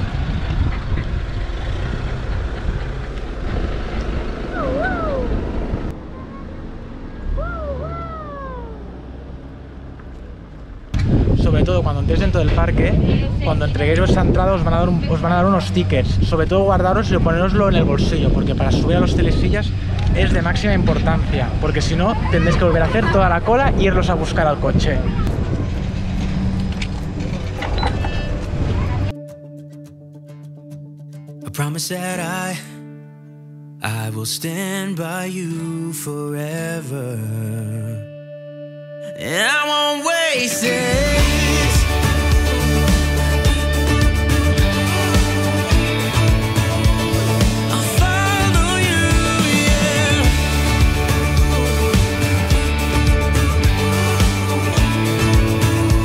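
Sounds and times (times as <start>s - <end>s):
wind buffeting microphone: 0.0s - 6.0s, 10.9s - 29.1s
low steady rumble: 0.0s - 29.1s
rising and falling whining calls: 4.4s - 9.0s.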